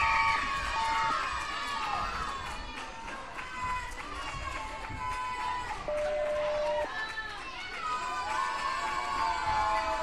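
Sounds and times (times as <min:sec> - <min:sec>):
crowd voices and calls: 0:00.0 - 0:10.0
electronic timer beep: 0:05.9 - 0:06.9.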